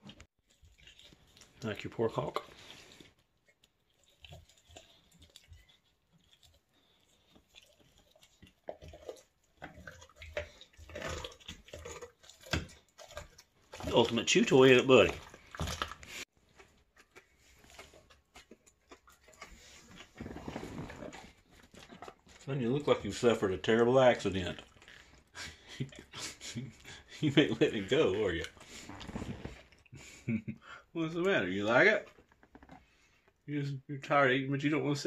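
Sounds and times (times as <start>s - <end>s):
dog chewing: 0.0s - 29.9s.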